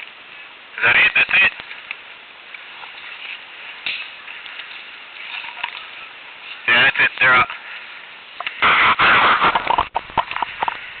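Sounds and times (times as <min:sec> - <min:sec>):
rustling of brush and leaves: 0:00.0 - 0:11.0
twigs snapping and clicking: 0:01.6 - 0:04.9.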